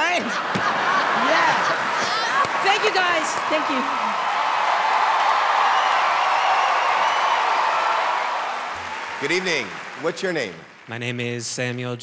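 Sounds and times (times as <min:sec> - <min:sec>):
audience applauding and cheering: 0:00.0 - 0:12.0.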